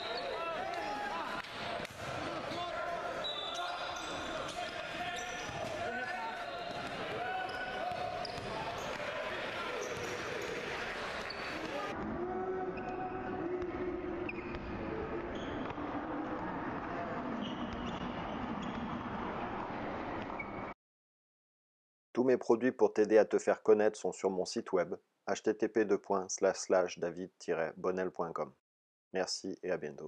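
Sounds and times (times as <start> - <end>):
sneaker squeaks: 0.0 - 1.1, 2.5 - 11.9, 14.2 - 15.8, 17.3 - 19.2, 19.9 - 20.8
players shouting: 0.0 - 17.6.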